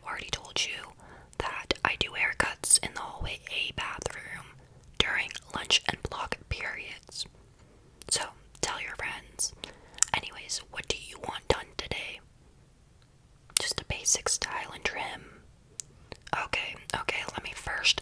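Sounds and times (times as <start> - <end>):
woman whispering: 0.0 - 7.3, 8.0 - 12.2, 13.6 - 15.4, 16.2 - 18.0.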